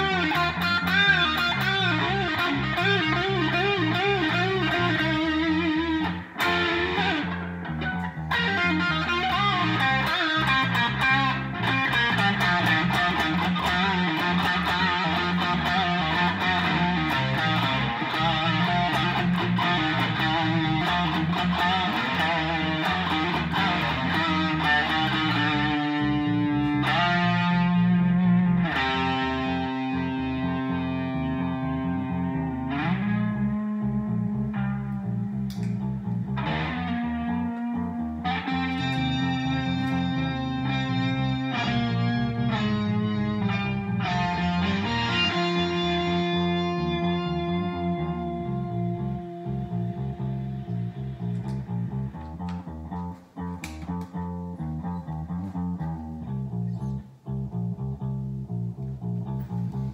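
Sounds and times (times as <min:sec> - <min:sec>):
electric guitar blues lead: 0:00.0 - 0:59.9
low bass line: 0:00.0 - 0:59.9.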